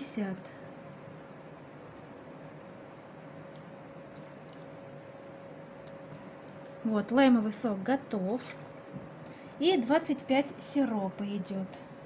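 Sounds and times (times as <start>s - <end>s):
low steady hum: 0.0s - 12.0s
liquid dripping into metal cup: 2.4s - 4.8s.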